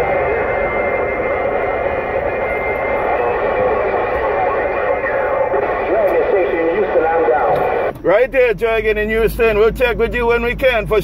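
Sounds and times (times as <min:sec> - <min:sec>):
radio static: 0:00.0 - 0:08.0
distorted radio voice: 0:02.2 - 0:07.9.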